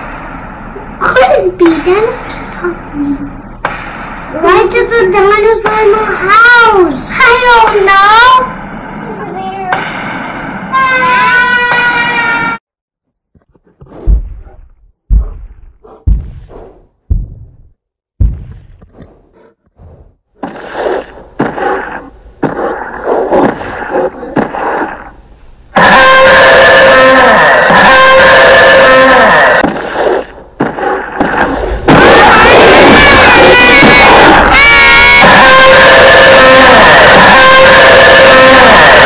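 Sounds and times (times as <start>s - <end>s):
heavy footstep thuds: 14.0s - 18.9s
dinosaur roaring: 25.8s - 29.6s, 32.0s - 39.0s.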